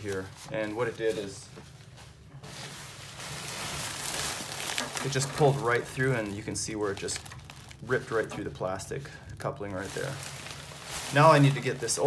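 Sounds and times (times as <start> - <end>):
crinkly sleeping pad rustling: 0.0 - 12.0.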